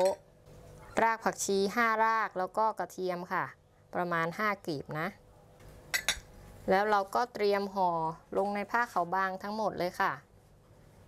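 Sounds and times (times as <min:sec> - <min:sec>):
tableware clinking: 0:00.0 - 0:00.2, 0:05.9 - 0:06.3.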